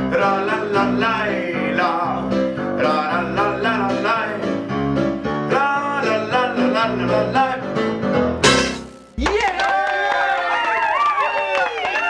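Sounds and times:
crowd cheering and whistling: 9.2 - 12.0
scattered clapping: 9.2 - 12.0.

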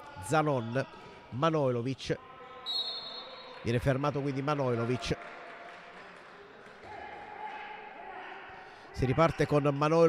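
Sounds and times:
faint indoor hall ambience: 0.0 - 10.0.

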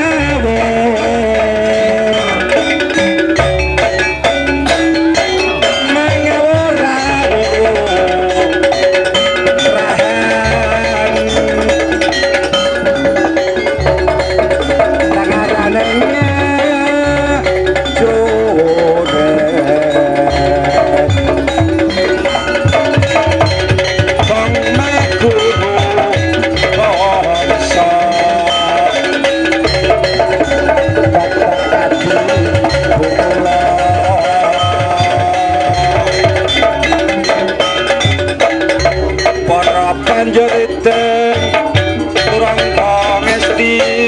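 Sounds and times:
deep hand-drum strokes: 0.0 - 44.0
held melody: 0.0 - 44.0
metal mallet percussion: 0.0 - 44.0.

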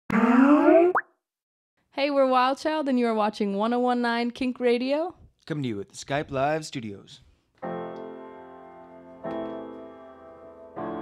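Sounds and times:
rising bloop: 0.1 - 1.1.

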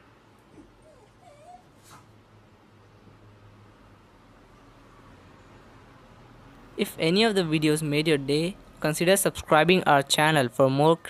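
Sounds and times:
dog whimpering: 0.6 - 1.8.

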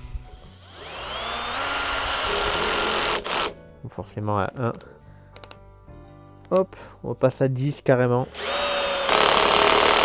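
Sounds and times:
cordless drill motor whine: 0.2 - 3.5, 8.2 - 10.0.

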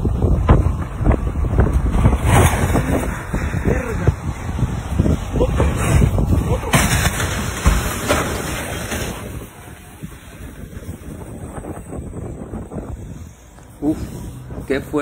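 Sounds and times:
wind and road noise: 0.0 - 15.0
truck slamming into vehicles: 0.1 - 13.2
vehicle crash: 0.1 - 15.0.

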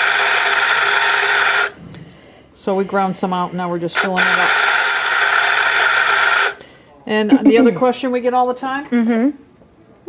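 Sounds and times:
coffee grinder grinding: 0.0 - 1.8, 4.0 - 6.6.

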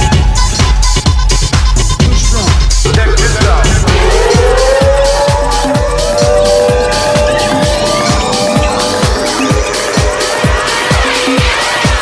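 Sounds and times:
club dance music: 0.0 - 12.0
kick drum: 0.0 - 12.0
rising synth tones: 3.8 - 12.0.

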